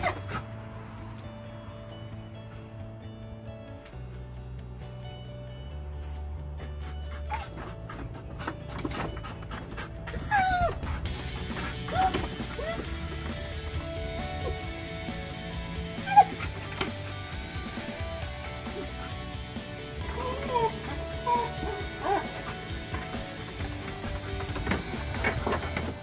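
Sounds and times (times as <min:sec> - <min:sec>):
dog whining: 0:00.0 - 0:00.5, 0:06.8 - 0:08.1, 0:08.7 - 0:14.8, 0:15.8 - 0:17.0, 0:18.6 - 0:24.5
background music: 0:00.0 - 0:26.0.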